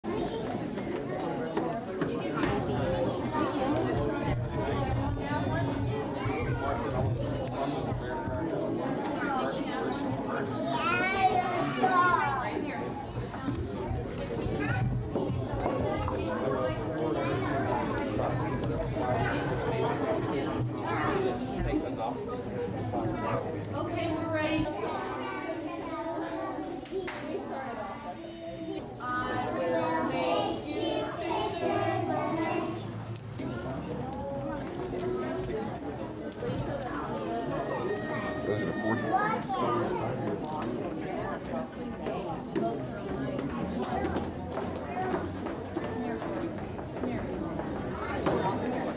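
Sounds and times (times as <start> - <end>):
children chattering and calling out: 0.0 - 48.9
high-pitched child's voice: 38.8 - 40.0.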